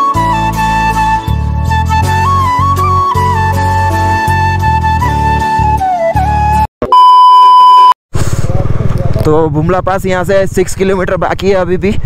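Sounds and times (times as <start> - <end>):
high-pitched test-tone beep: 6.8 - 8.0
motorcycle engine running: 8.2 - 10.6.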